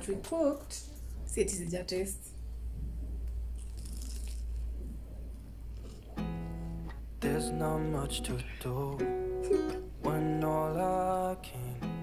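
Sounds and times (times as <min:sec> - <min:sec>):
low steady hum: 0:00.0 - 0:12.0
quiet chewing: 0:02.9 - 0:06.2
crunch of biting fried bread: 0:03.5 - 0:04.8.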